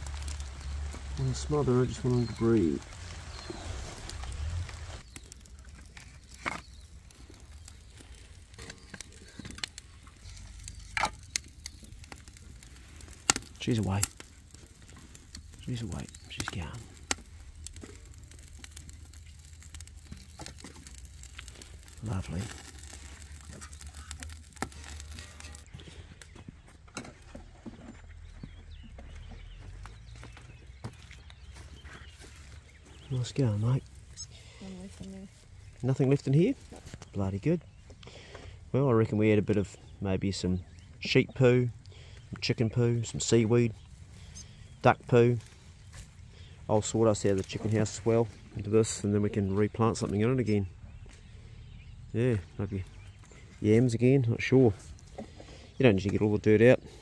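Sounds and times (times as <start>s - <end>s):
hissing noise: 0.0s - 5.7s
fire crackling: 0.0s - 27.4s, 28.1s - 57.0s
wood sticks clicking and knocking: 0.0s - 27.7s
fire rumbling: 0.0s - 57.0s.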